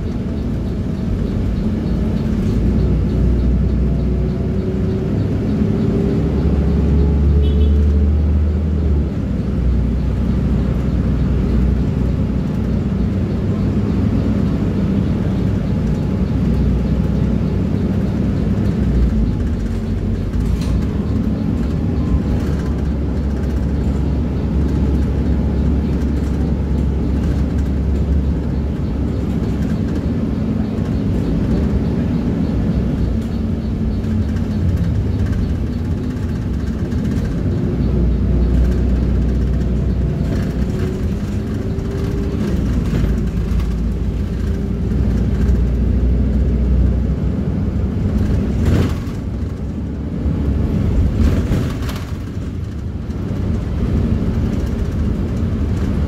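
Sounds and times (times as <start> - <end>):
bus engine drone: 0.0 - 56.0
road noise: 0.0 - 56.0.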